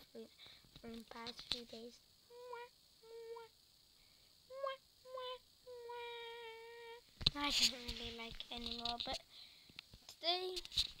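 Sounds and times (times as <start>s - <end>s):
child humming into hand: 2.3s - 3.5s, 4.5s - 7.0s.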